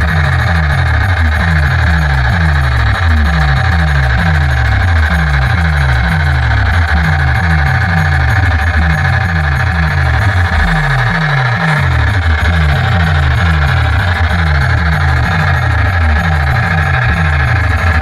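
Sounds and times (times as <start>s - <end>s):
electronic dance music with heavy bass: 0.0s - 18.0s.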